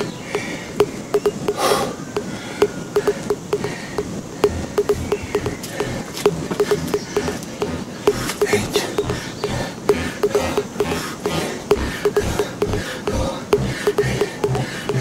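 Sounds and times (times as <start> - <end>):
man breathing hard: 0.0 - 0.8, 1.6 - 15.0
sharp clicks: 0.0 - 15.0
short low pips: 0.0 - 15.0.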